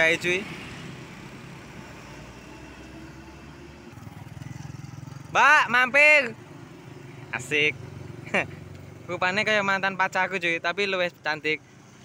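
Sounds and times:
motorcycle engines passing: 0:00.0 - 0:12.0.

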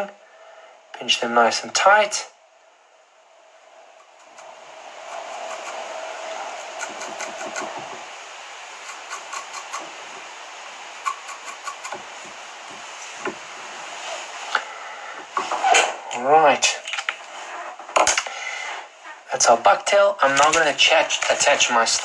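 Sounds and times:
steady background hum: 0:00.0 - 0:22.0.

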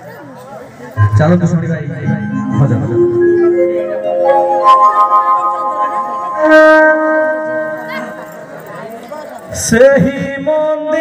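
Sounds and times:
organ playing held notes: 0:01.0 - 0:08.8.

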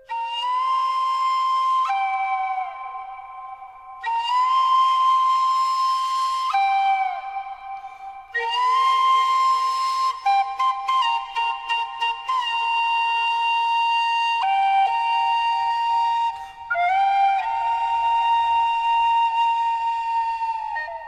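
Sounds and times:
solo breathy flute: 0:00.0 - 0:21.0.

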